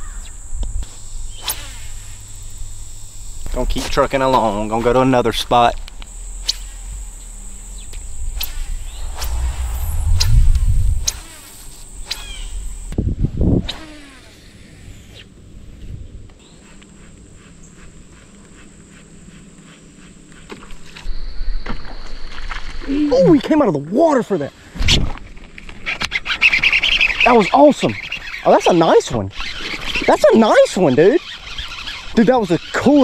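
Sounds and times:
insect drone: 0:00.0 - 0:24.7, 0:26.2 - 0:33.0
fishing reel ticking: 0:28.0 - 0:33.0.

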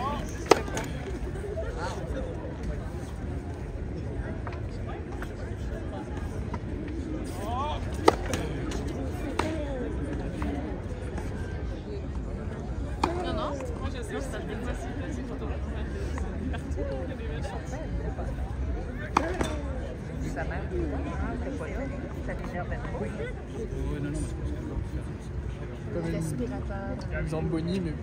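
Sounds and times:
racket hitting tennis ball: 0:00.2 - 0:01.0, 0:07.9 - 0:09.6, 0:19.1 - 0:19.6.

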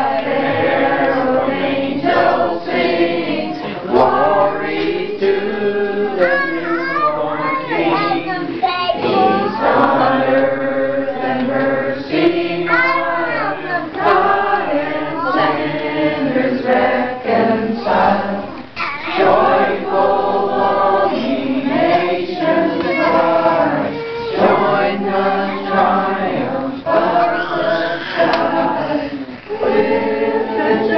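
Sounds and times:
group of people singing: 0:00.0 - 0:30.9.

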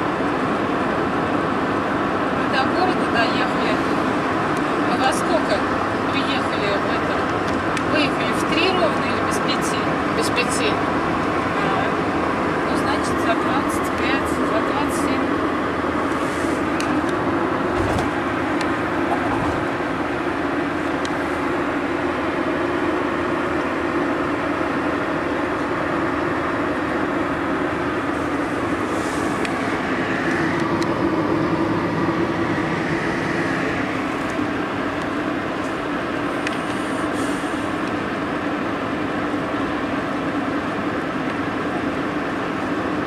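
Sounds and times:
car road and engine noise: 0:00.0 - 0:43.0.

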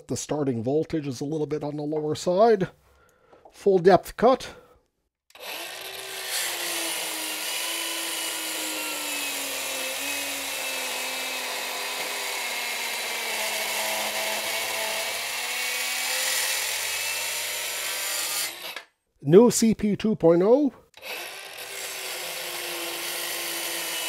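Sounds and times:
circular saw cutting wood: 0:05.3 - 0:18.9, 0:21.0 - 0:24.0.

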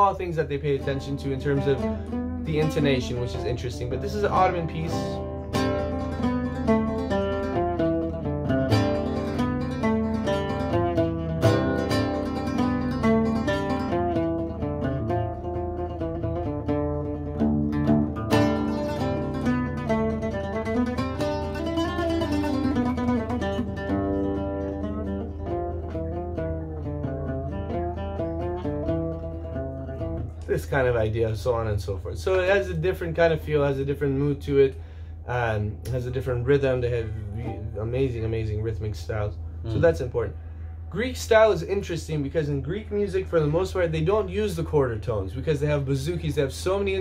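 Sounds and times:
oud plucked with a plectrum: 0:00.0 - 0:47.0.

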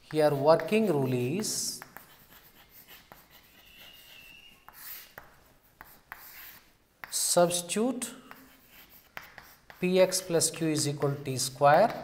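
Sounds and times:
chalk scratching on blackboard: 0:00.0 - 0:12.0
chalk tapping on board: 0:00.0 - 0:12.0.

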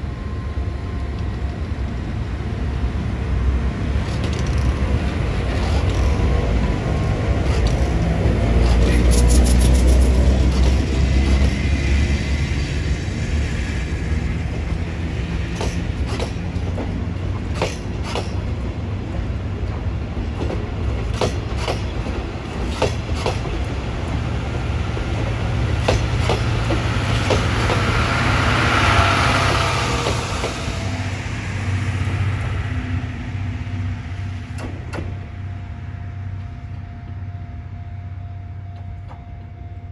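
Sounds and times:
train rumbling past: 0:00.0 - 0:39.9
wheels clacking on rails: 0:03.9 - 0:33.1.

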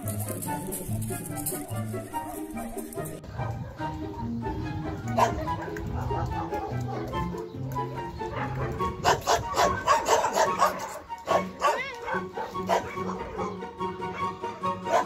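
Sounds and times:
background music: 0:00.0 - 0:15.0
dog yelp: 0:01.7 - 0:03.8, 0:05.2 - 0:07.2, 0:08.3 - 0:15.0
dog barking: 0:05.1 - 0:07.2, 0:08.2 - 0:15.0.

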